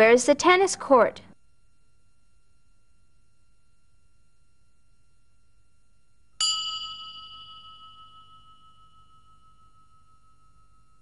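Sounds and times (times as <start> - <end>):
bell-like chime ringing: 6.4 - 11.0.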